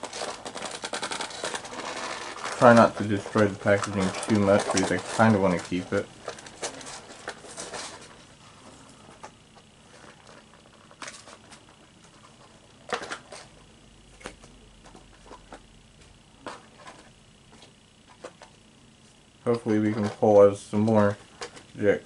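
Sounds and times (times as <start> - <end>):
packaging clicks and rustles: 0.0 - 8.3, 9.1 - 15.6.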